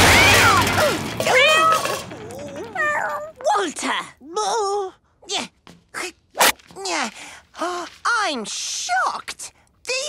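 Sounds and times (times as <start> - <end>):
cartoon cat yowling and meowing: 1.3 - 3.6.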